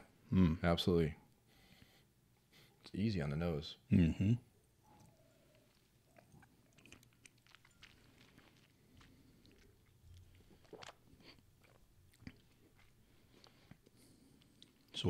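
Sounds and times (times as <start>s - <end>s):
mouth clicks and lip smacks: 4.9s - 15.0s.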